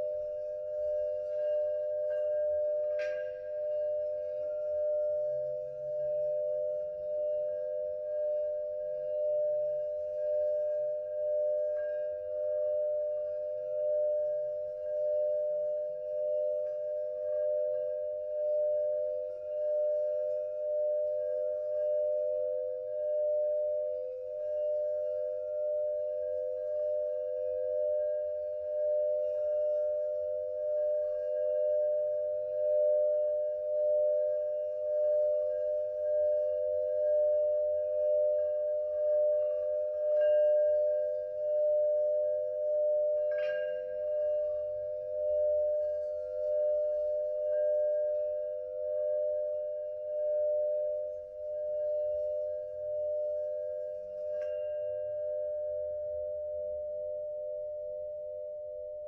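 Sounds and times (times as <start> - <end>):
singing bowl ringing tone: 0.0 - 59.0.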